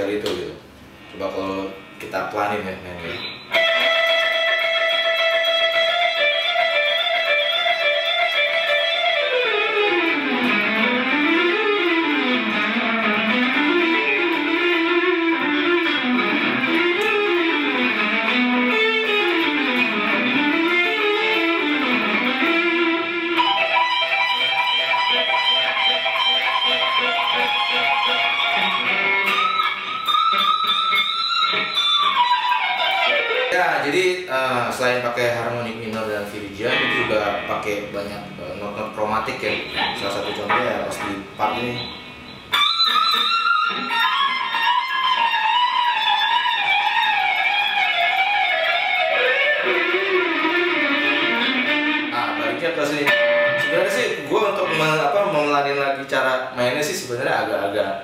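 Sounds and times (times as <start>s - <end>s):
electric guitar lead line: 3.0s - 58.0s.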